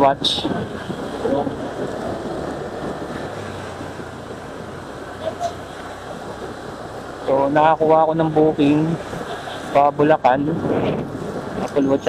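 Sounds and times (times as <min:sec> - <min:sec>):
motorcycle engine hum: 0:00.0 - 0:12.0
wind rush over microphone: 0:00.0 - 0:12.0.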